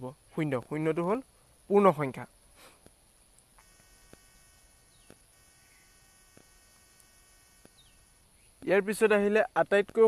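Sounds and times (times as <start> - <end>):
thin high whine: 3.6 - 8.5.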